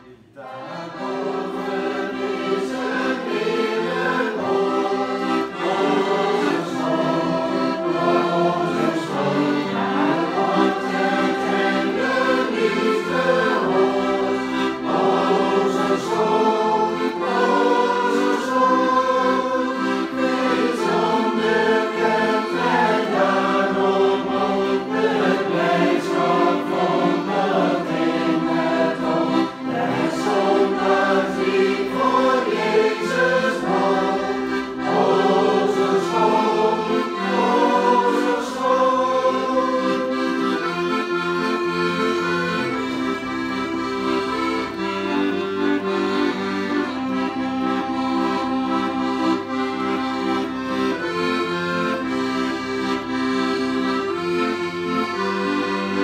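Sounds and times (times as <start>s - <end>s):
accordion playing chords: 0.0s - 56.0s
group singing a hymn: 0.4s - 42.8s.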